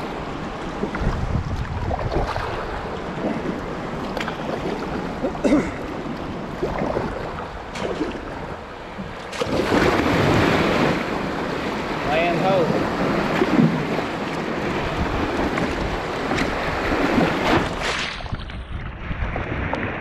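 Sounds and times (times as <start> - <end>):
water rushing along hull: 0.0 - 20.0
wind buffeting microphone: 0.0 - 20.0
small surf breaking: 9.2 - 20.0.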